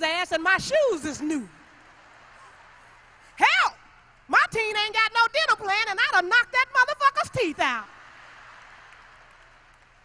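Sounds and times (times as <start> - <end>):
faint audience applause: 7.9 - 10.0.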